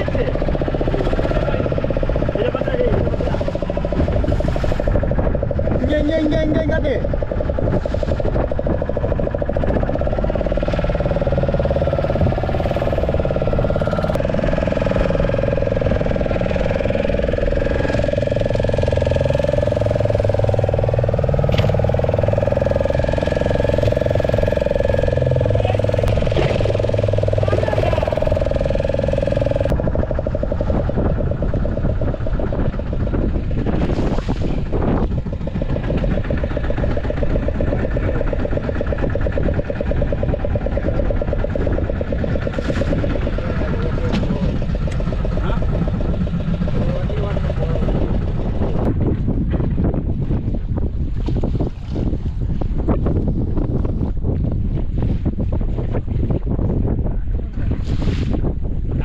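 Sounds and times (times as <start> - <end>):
people talking: 0.0 - 3.6, 5.8 - 7.1, 25.5 - 26.1, 27.4 - 28.3, 43.0 - 48.6
boat motor running: 0.0 - 59.0.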